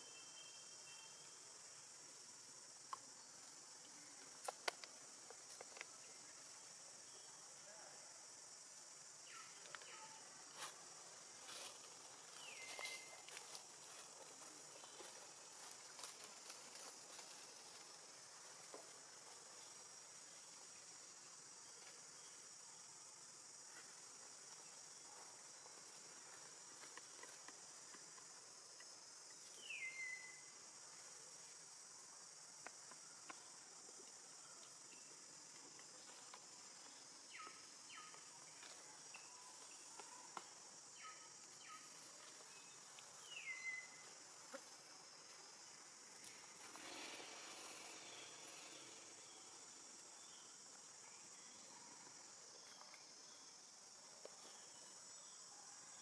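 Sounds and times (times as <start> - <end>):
insects droning: 0.0 - 56.0.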